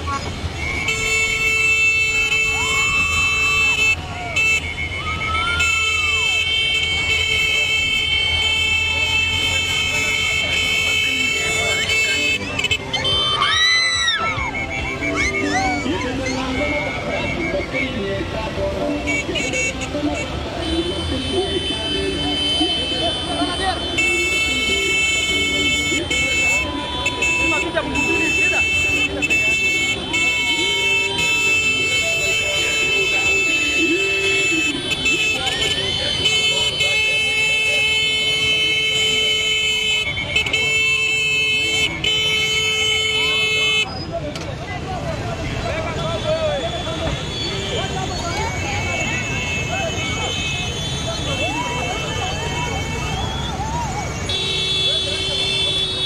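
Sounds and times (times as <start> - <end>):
motorcycle horns blaring: 0.0 - 5.0, 5.6 - 13.6, 14.3 - 44.0, 45.8 - 56.0
people shouting: 2.2 - 17.4, 21.6 - 38.7, 47.6 - 56.0.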